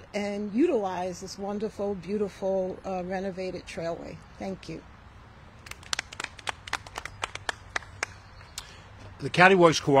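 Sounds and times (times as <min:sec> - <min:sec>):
people clapping: 0:05.6 - 0:08.3.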